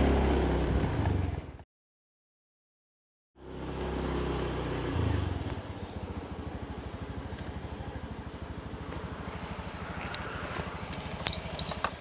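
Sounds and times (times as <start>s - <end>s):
scooter engine putter: 5.4s - 9.2s, 9.8s - 12.0s.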